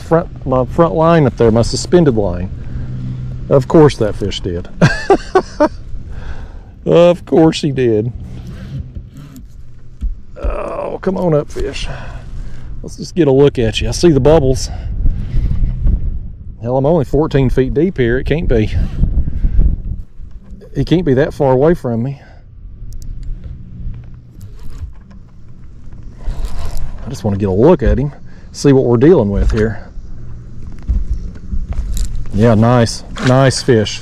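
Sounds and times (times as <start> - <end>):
wind buffeting microphone: 0.0 - 34.0
person laughing: 4.7 - 5.8.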